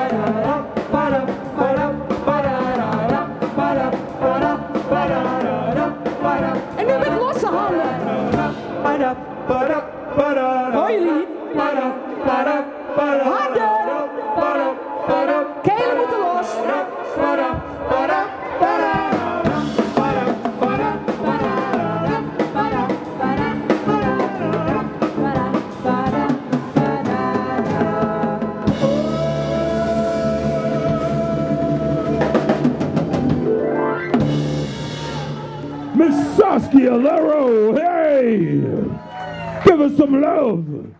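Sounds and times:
jazz band playing: 0.0s - 8.8s, 18.6s - 37.0s.

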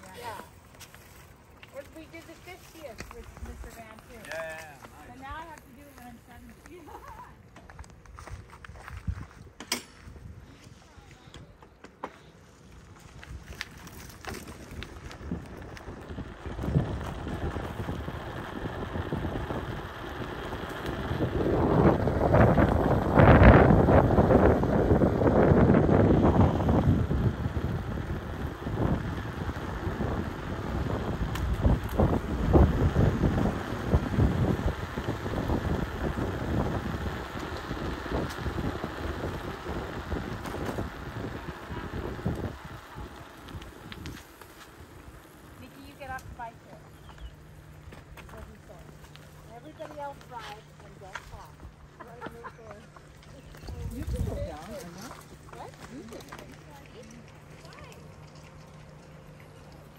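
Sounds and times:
bicycle tyres rolling on gravel: 0.0s - 59.9s
wind buffeting microphone: 1.8s - 11.6s, 13.1s - 59.9s.

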